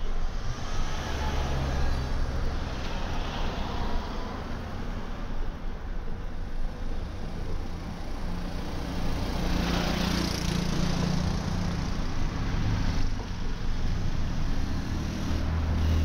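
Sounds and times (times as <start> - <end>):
motor rickshaw engines: 0.0 - 16.0
street noise: 0.0 - 16.0
vehicle engines humming: 0.0 - 16.0.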